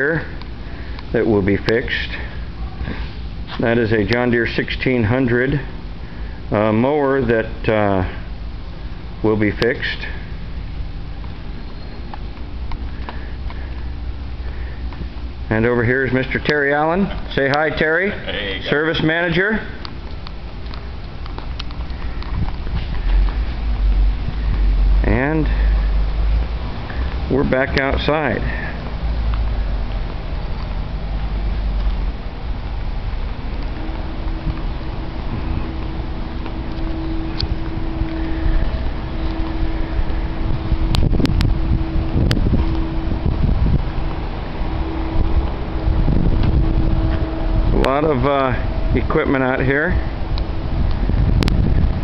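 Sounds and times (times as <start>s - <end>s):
steady low hum: 0.0s - 52.0s
footsteps on concrete: 19.8s - 24.8s
wind noise on microphone: 21.0s - 26.4s, 29.8s - 49.2s, 49.9s - 52.0s.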